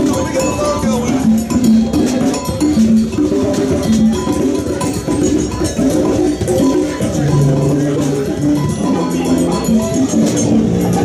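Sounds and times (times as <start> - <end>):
instruments and percussion playing: 0.0 - 11.0
steady crowd din: 0.0 - 11.0.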